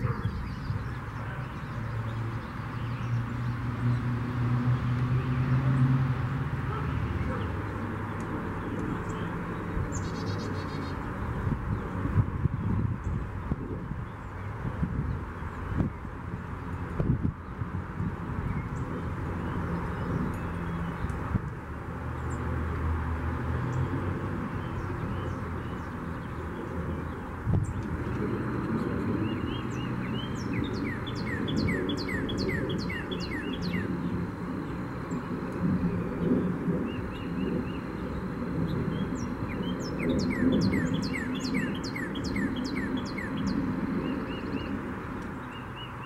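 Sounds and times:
high-pitched bird chirps: 30.2 - 33.9.

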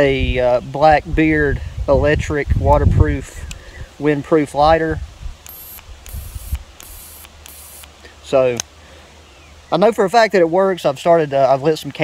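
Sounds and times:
arc lighter hissing whine: 5.4 - 8.0.

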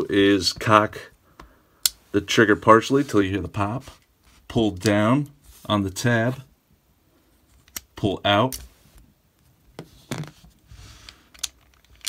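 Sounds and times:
soft handling noise: 0.0 - 6.5, 7.2 - 12.0.

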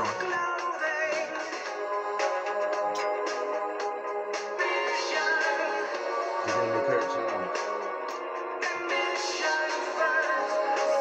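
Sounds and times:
music with sustained notes: 0.0 - 11.0.

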